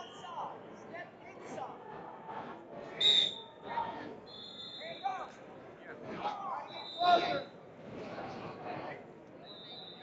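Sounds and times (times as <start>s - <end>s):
crowd chatter echoing: 0.0s - 10.0s
whistle blasts: 3.0s - 3.4s, 4.3s - 5.2s, 9.5s - 10.0s.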